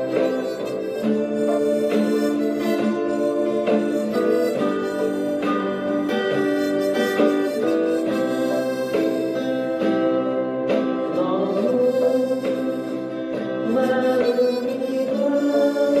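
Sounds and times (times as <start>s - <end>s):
guitar strumming chords: 0.0s - 16.0s
harmonica playing slow melody: 0.0s - 16.0s.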